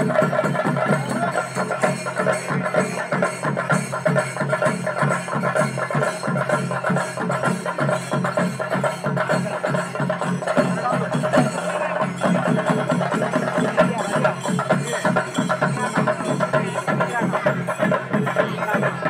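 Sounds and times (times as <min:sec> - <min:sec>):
fast steady drumbeat: 0:00.0 - 0:19.0.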